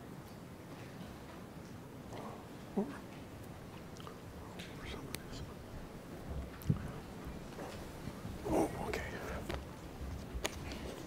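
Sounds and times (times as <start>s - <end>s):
soft rustling: 3.0s - 11.0s
faint whispering: 3.9s - 5.8s, 8.4s - 9.8s.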